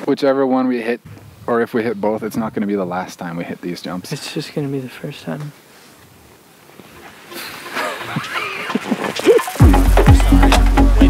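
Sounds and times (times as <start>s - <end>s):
faint steady hiss: 0.0s - 10.9s
background music: 7.3s - 11.0s.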